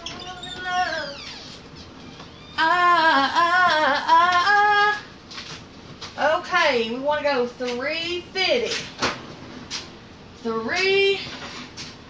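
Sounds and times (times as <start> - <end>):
woman singing wordless phrase: 2.6 - 5.1, 10.4 - 11.3.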